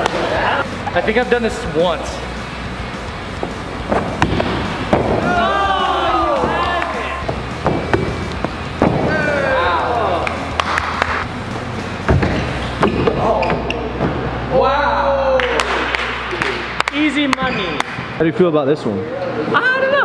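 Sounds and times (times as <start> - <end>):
steady low hum: 0.0 - 18.2.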